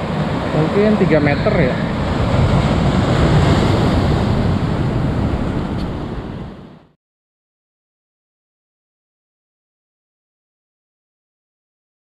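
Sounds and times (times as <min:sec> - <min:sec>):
wind buffeting microphone: 0:00.0 - 0:06.9
ocean surf breaking over boulders: 0:00.0 - 0:07.0.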